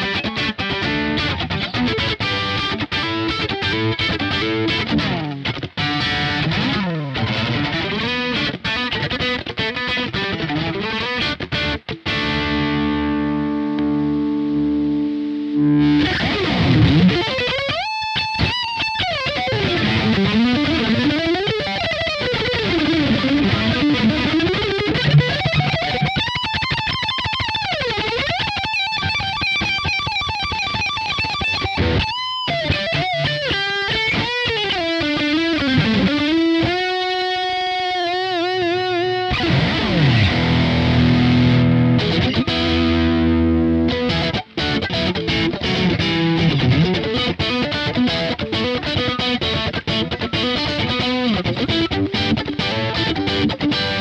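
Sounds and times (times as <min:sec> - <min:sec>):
distorted electric guitar: 0:00.0 - 0:54.0.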